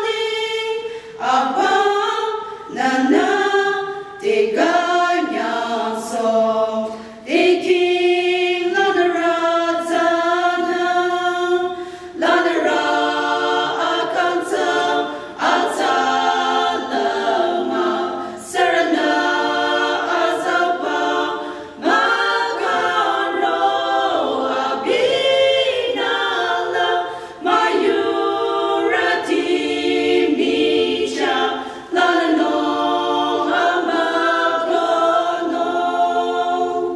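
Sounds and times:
women singing a hymn a cappella: 0:00.0 - 0:36.9.

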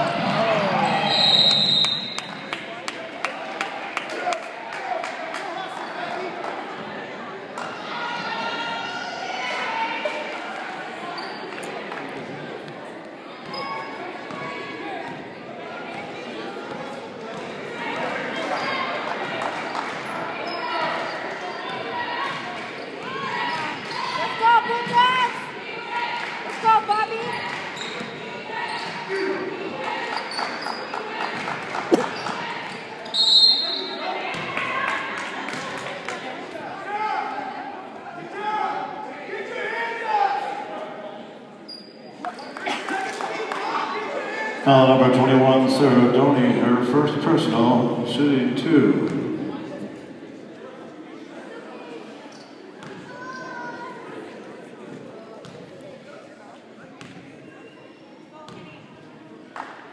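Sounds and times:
voices chattering in echoing gym: 0:00.0 - 0:59.9
whistle blast: 0:01.0 - 0:02.3, 0:33.2 - 0:34.0
sneaker squeaks: 0:11.1 - 0:11.7, 0:13.4 - 0:14.5, 0:18.3 - 0:18.9, 0:27.2 - 0:29.5, 0:30.1 - 0:31.0, 0:31.9 - 0:34.0, 0:41.6 - 0:42.6, 0:52.3 - 0:53.1, 0:57.0 - 0:58.8.

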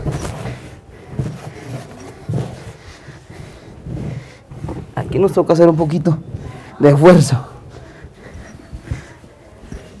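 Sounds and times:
hands mixing dough: 0:00.0 - 0:10.0.

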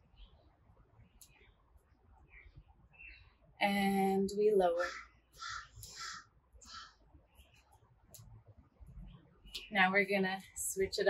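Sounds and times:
bird calling harshly: 0:04.8 - 0:07.0.

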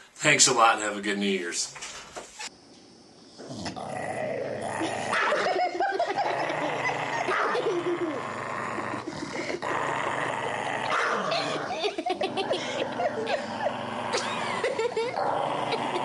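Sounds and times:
dog growling and snarling: 0:03.4 - 0:16.0.

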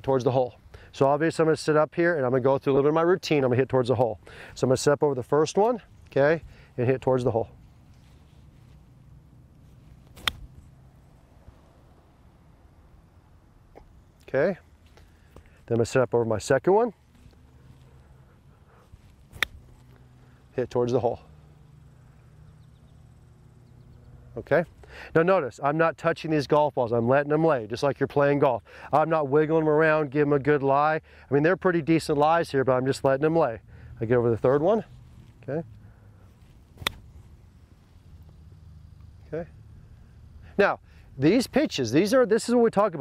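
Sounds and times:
golf club striking ball: 0:10.0 - 0:10.8, 0:19.2 - 0:20.0, 0:36.7 - 0:37.2.

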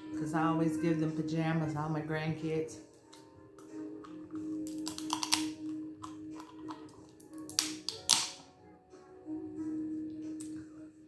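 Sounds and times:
background music: 0:00.0 - 0:11.0
crab shell cracking: 0:04.0 - 0:08.4.

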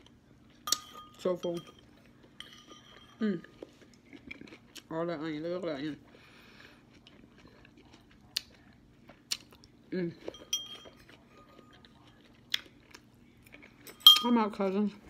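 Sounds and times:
person chewing: 0:01.9 - 0:05.0, 0:05.8 - 0:14.0.

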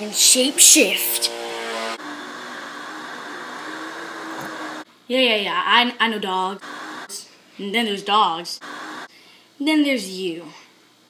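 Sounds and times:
steady background hiss: 0:04.6 - 0:11.0.

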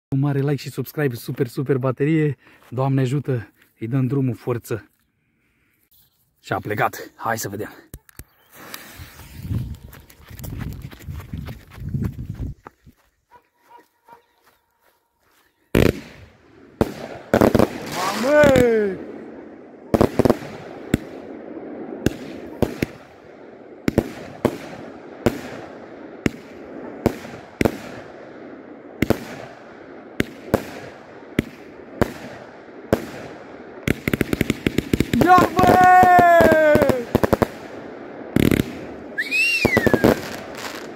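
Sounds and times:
crackling firework stars: 0:07.9 - 0:10.8, 0:15.7 - 0:40.9
firework shots: 0:15.7 - 0:40.9.

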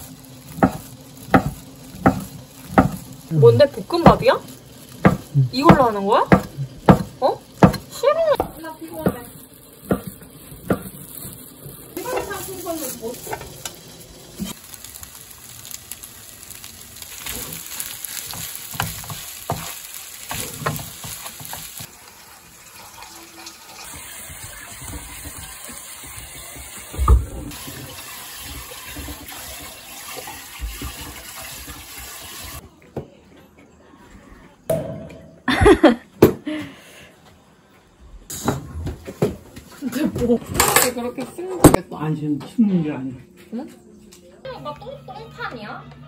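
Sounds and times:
food sizzling in a pan: 0:00.0 - 0:32.6.

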